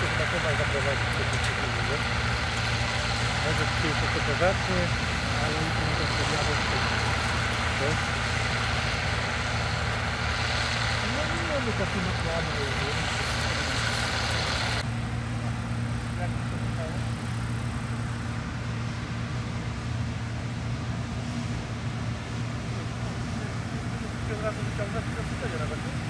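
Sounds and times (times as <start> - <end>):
combine harvester engine drone: 0.0 - 26.0.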